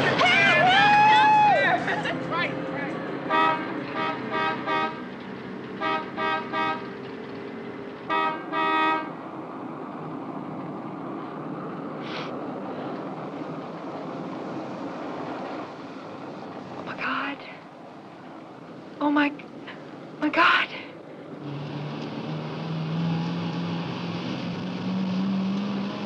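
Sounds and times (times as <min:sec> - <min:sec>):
car driving on highway: 0:00.0 - 0:26.0
car horn honking: 0:03.3 - 0:05.1, 0:05.8 - 0:06.9, 0:08.1 - 0:09.2.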